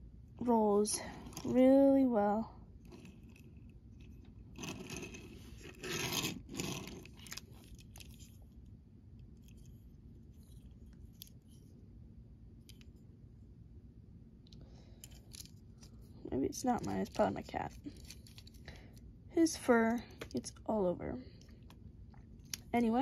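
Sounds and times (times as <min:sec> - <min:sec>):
toy car scraping on wooden table: 0:04.5 - 0:07.4.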